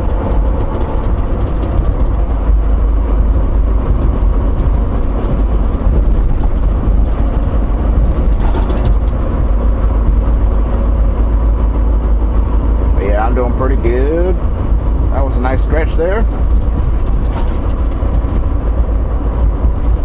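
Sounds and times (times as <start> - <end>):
truck engine and road noise: 0.0 - 20.0.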